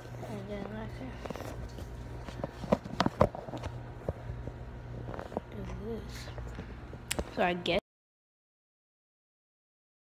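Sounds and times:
steady low hum: 0.0s - 7.8s.

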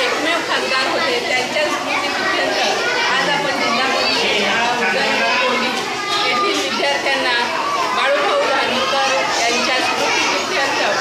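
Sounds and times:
woman talking: 0.0s - 4.4s, 5.0s - 11.0s
voices chattering: 0.0s - 11.0s.

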